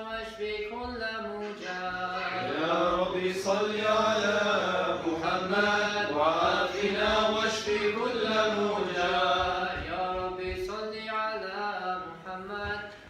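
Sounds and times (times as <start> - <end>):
men chanting devotional verse: 0.0 - 13.0.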